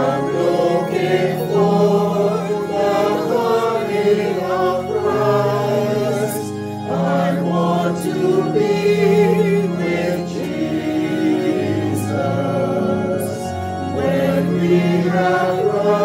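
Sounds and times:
mixed choir singing a gospel hymn: 0:00.0 - 0:16.0.

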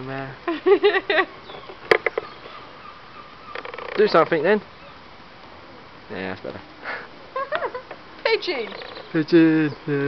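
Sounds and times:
outdoor background: 0:00.0 - 0:10.0
person laughing: 0:06.9 - 0:07.9.

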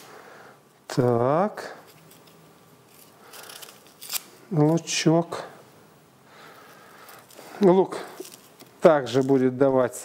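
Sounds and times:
onion skin crackling and rustling: 0:00.9 - 0:04.8, 0:06.6 - 0:09.6.

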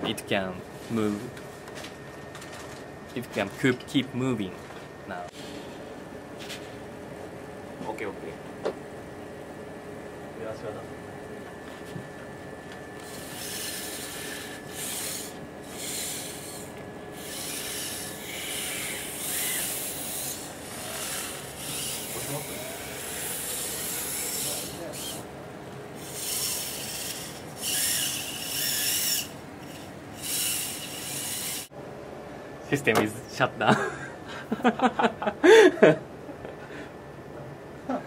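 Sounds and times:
robot actuators whirring: 0:12.9 - 0:31.7.

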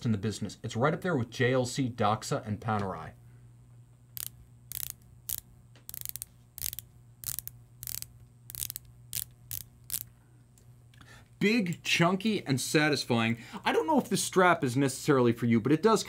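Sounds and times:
watch bezel ratcheting clicks: 0:04.2 - 0:10.1.

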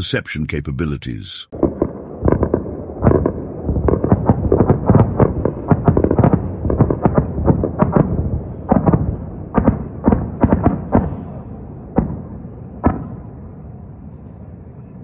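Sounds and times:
sharp bangs and booms: 0:01.5 - 0:13.4.

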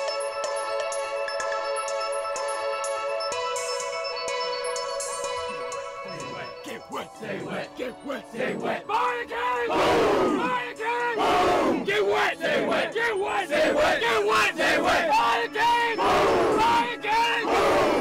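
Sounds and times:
men shouting a rhythmic cheer: 0:06.2 - 0:18.0.

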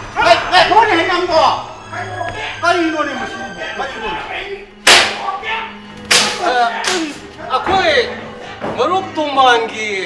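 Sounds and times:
sharp cracking hits: 0:04.8 - 0:05.4, 0:06.1 - 0:07.2.

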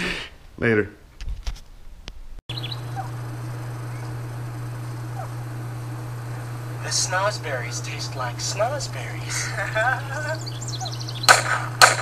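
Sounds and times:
faint bird chirps: 0:02.5 - 0:05.5, 0:10.3 - 0:11.4
car engine idling: 0:02.5 - 0:12.0.

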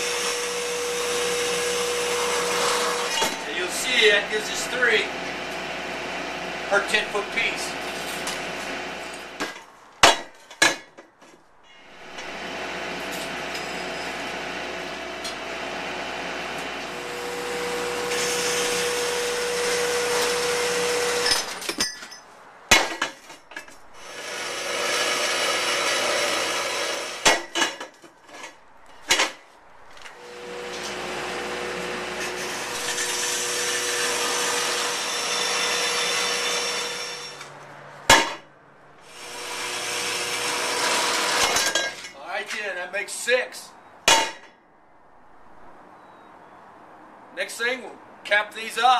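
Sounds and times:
band saw cutting steel: 0:00.0 - 0:10.2, 0:11.7 - 0:21.8, 0:22.7 - 0:29.4, 0:30.0 - 0:38.4, 0:39.0 - 0:42.8
metal clanks: 0:21.2 - 0:23.8.

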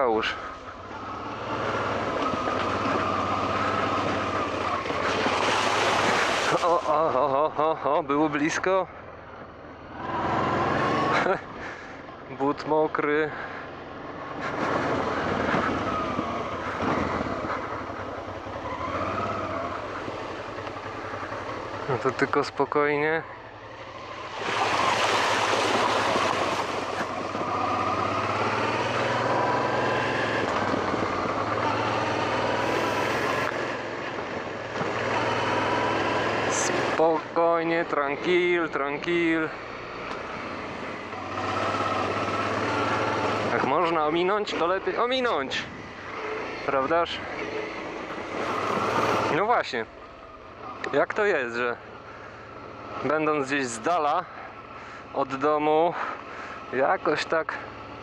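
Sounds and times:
motorcycle engine revving: 0:00.4 - 0:07.2, 0:09.5 - 0:12.0, 0:13.3 - 0:51.0
wind noise: 0:14.4 - 0:17.8.

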